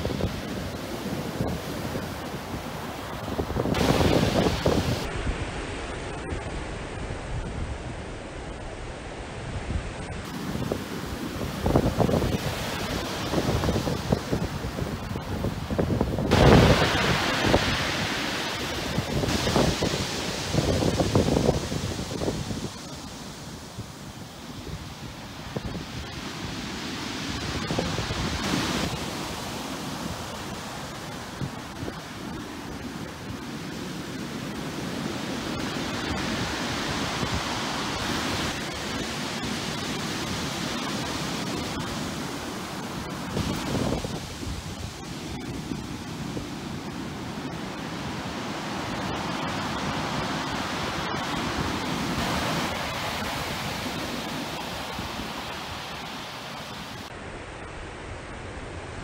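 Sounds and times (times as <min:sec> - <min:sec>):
wind buffeting microphone: 0:00.0 - 0:05.7, 0:09.3 - 0:26.6, 0:42.9 - 0:56.1
surf breaking on shore: 0:00.0 - 0:59.0.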